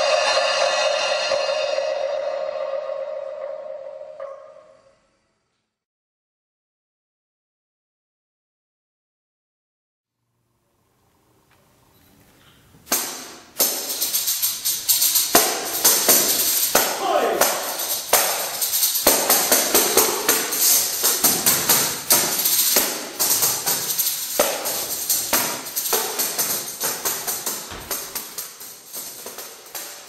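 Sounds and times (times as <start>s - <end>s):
tambourine strikes and jingles: 12.9s - 30.0s.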